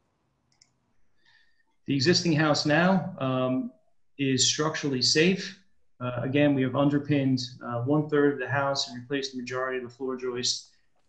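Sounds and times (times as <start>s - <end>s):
computer mouse clicks: 0.5s - 0.8s
man speaking: 1.9s - 10.6s.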